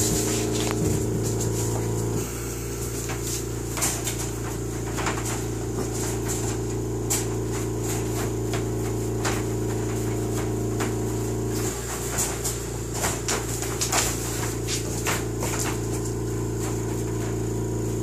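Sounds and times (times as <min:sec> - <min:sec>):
mechanical hum: 0:00.0 - 0:18.0
wire dog pen rattling: 0:03.0 - 0:17.4.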